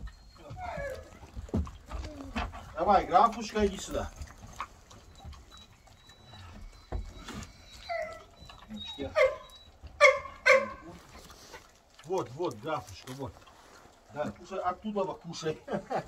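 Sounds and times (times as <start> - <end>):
dog whining: 0.0 - 2.8, 4.3 - 10.9
dog yelping barks: 0.1 - 1.6, 7.6 - 10.9.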